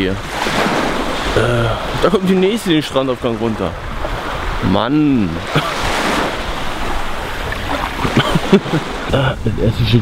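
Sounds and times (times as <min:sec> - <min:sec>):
small waves washing on shore: 0:00.0 - 0:10.0
wind on microphone: 0:00.0 - 0:10.0.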